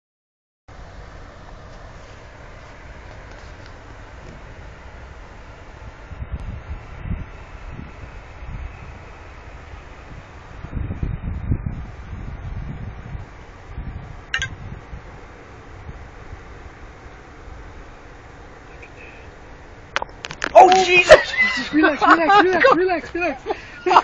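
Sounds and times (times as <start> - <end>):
wind buffeting microphone: 2.2 - 18.6.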